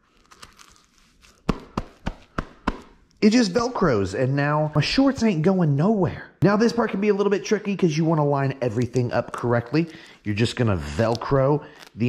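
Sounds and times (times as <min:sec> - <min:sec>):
velcro strap rasping and crackling: 0:00.0 - 0:03.2, 0:10.6 - 0:12.0.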